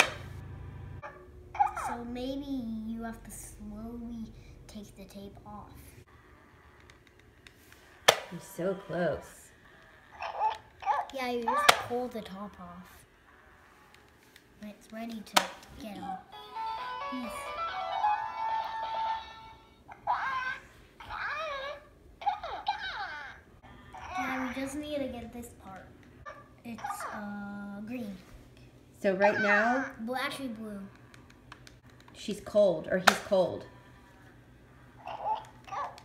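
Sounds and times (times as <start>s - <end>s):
toy warbling baby-like chatter: 10.0s - 11.9s, 16.0s - 24.7s, 35.0s - 36.0s.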